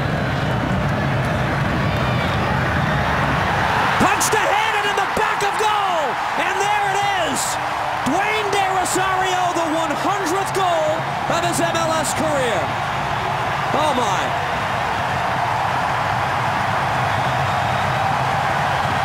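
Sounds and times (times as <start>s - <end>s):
stadium crowd cheering: 0.0s - 19.0s.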